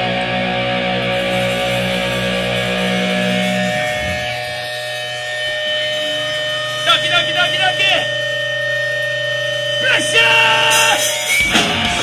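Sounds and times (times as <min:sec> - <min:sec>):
guitar amplifier feedback: 0:00.0 - 0:12.0.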